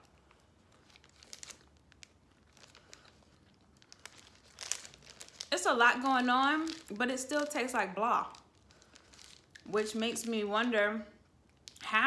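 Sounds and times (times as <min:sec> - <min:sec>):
foil wrapper crinkling: 0:00.0 - 0:10.8.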